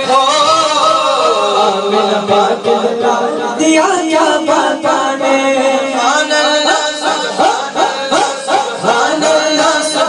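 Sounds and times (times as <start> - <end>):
male voices chanting: 0.0 - 10.0
man chanting into microphone: 0.0 - 10.0.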